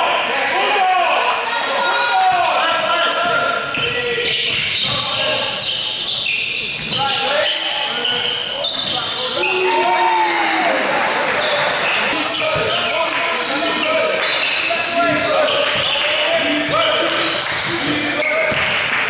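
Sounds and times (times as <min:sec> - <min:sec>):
players shouting: 0:00.0 - 0:05.5, 0:06.9 - 0:18.7
sneaker squeaks: 0:00.4 - 0:10.0, 0:10.6 - 0:19.0.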